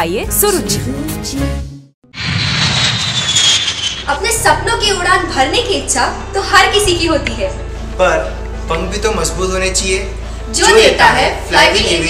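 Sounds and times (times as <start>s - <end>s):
jet airliner flying overhead: 2.2s - 4.4s
high engine whine falling: 2.2s - 4.5s.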